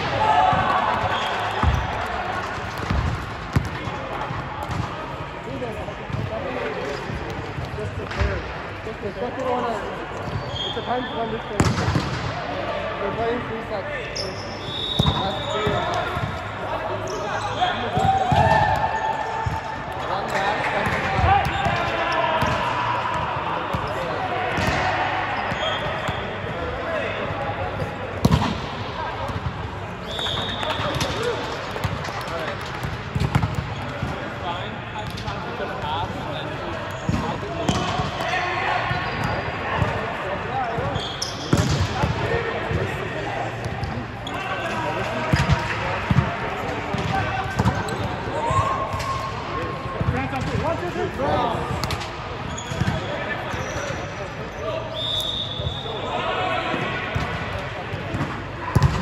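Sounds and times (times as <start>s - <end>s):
volleyballs hit and bouncing: 0.0s - 8.7s, 11.5s - 12.5s, 17.8s - 54.0s, 56.7s - 59.0s
players chattering: 0.0s - 59.0s
sneaker squeaks: 9.5s - 11.5s, 14.1s - 16.4s, 17.0s - 19.6s, 23.8s - 26.5s, 30.0s - 31.4s, 40.7s - 41.8s, 43.6s - 45.6s, 47.0s - 49.3s, 51.8s - 56.6s.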